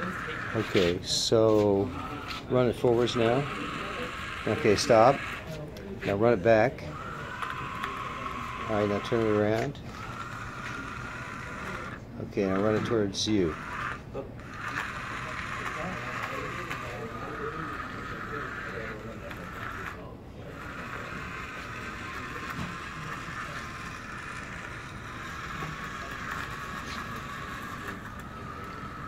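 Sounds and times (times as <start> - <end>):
small electric motors whining: 0.0 - 29.0.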